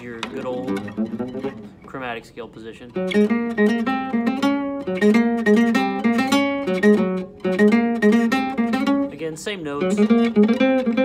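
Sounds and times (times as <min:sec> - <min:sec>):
classical guitar plucked notes: 0:00.0 - 0:11.0.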